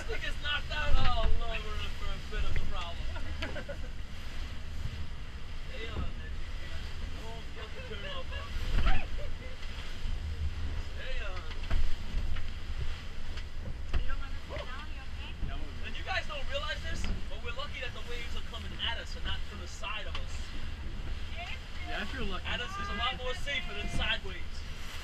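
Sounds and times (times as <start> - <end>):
boat engine running: 0.0 - 25.0
hull slams: 0.0 - 25.0
wind buffeting microphone: 0.0 - 25.0.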